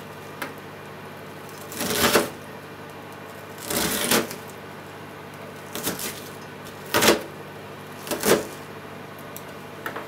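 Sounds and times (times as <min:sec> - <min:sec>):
knife chopping on plastic board: 0:05.7 - 0:06.3, 0:06.9 - 0:07.3, 0:08.0 - 0:08.6.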